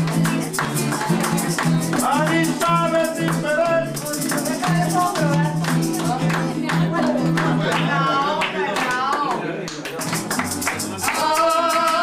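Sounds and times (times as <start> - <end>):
person singing: 0.0 - 9.3, 10.7 - 12.0
plucked guitar: 0.0 - 9.3, 9.9 - 12.0
handclaps: 0.0 - 12.0.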